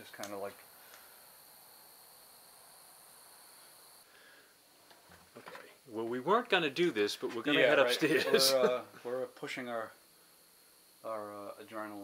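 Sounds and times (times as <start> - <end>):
faint high-pitched hiss: 0.0 - 12.0.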